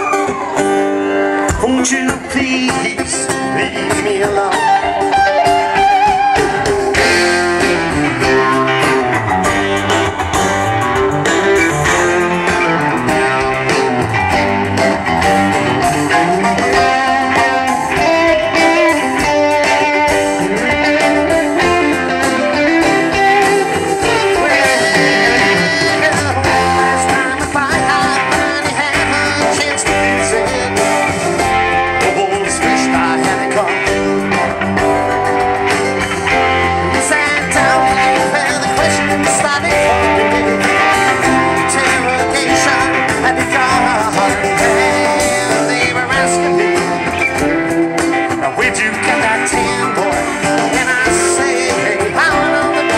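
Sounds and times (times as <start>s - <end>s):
electric guitar lead: 0.0s - 52.9s
live band playing: 0.0s - 52.9s.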